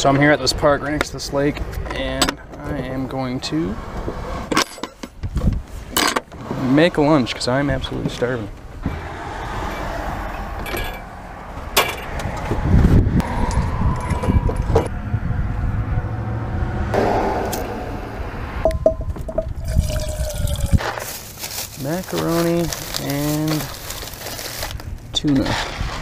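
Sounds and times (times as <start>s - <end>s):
low rumbling noise: 7.7s - 23.0s.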